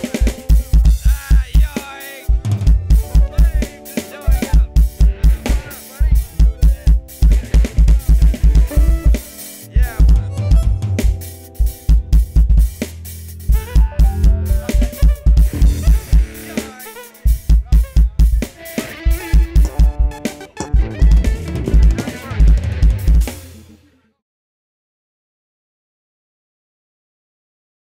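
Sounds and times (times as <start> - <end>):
electronic drum kit played fast: 0.0 - 23.8
sustained instrument notes: 13.6 - 17.0, 18.6 - 22.8.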